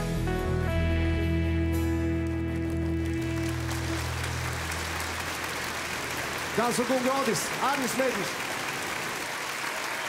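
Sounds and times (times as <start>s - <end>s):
audience applause: 2.2s - 10.0s.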